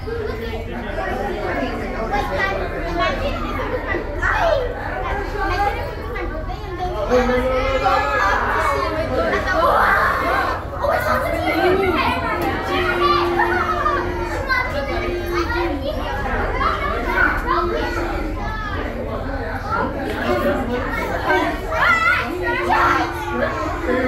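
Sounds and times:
children calling out: 0.0 - 24.0
crowd chatter: 0.0 - 24.0.

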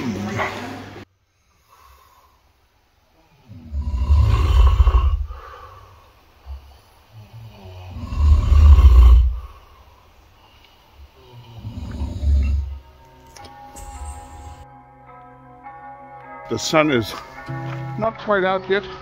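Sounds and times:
person snoring: 3.2 - 9.9, 11.1 - 13.0.

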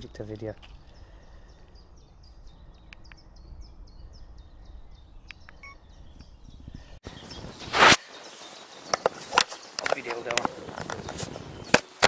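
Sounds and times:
low background rumble: 0.0 - 7.0
bird singing high notes: 0.9 - 10.2
faint clicks: 2.8 - 3.3.

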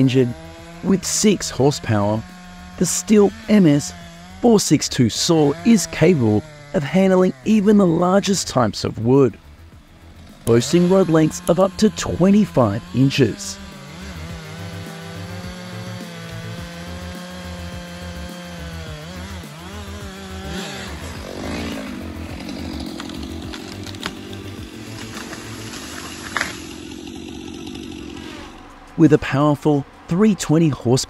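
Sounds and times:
chainsaw cutting tree trunk: 0.0 - 28.8.

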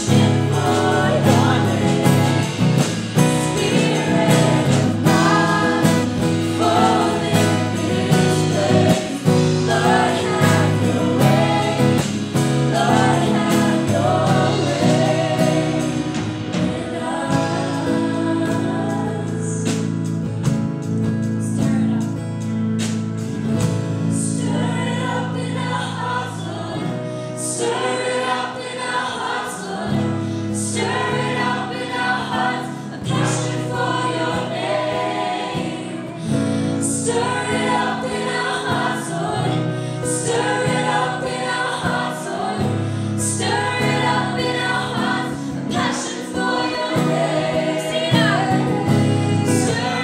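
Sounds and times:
women singing into microphones: 0.0 - 20.3, 24.1 - 50.0
steady bass line: 0.0 - 27.1
electric and acoustic guitars: 0.0 - 50.0.

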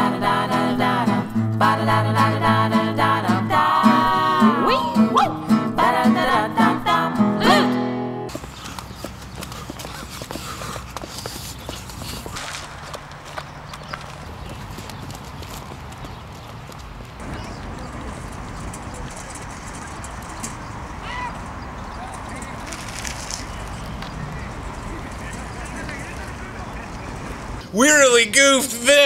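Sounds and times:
outdoor noise: 0.0 - 29.0.

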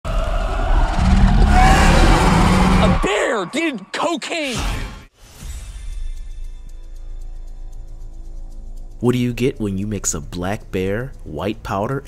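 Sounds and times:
bear roaring: 0.1 - 3.1.

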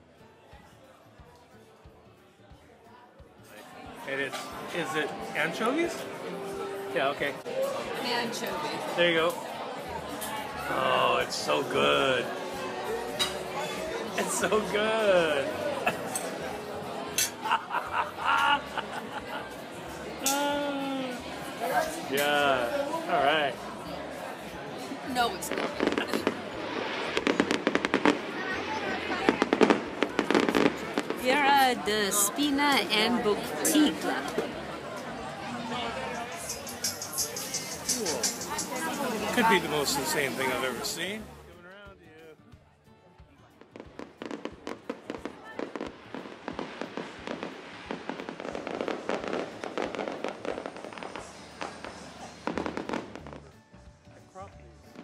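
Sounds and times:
fireworks crackling and popping: 25.1 - 33.0, 36.4 - 41.0, 43.5 - 53.6.

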